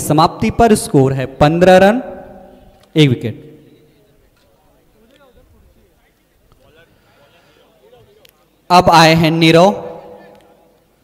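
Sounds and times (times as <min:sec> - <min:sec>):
background chatter of voices: 0:03.5 - 0:08.7.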